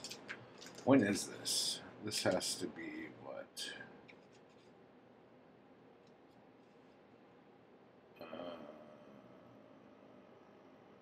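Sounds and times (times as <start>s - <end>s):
faint room hiss: 0.0s - 11.0s.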